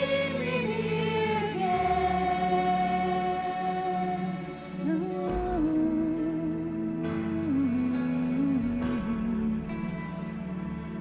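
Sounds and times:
band and strings playing: 0.0s - 11.0s
women singing worship music: 0.0s - 11.0s.

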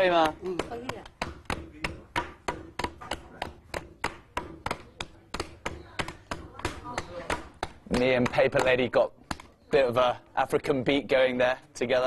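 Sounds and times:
mallets thudding on wet pulp: 0.0s - 11.3s.

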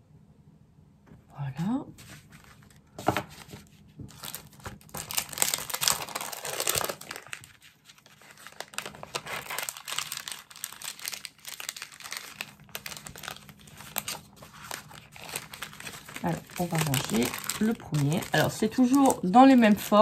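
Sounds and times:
paper cards rustling: 2.0s - 20.0s.

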